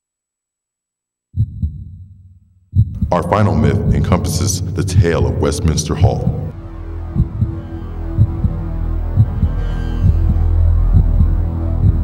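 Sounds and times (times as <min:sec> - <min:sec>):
deep low thumps: 0:01.4 - 0:12.0.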